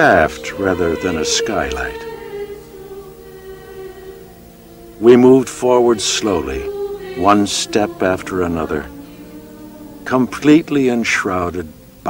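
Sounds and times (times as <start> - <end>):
choir holding a chord: 0.0 - 12.0.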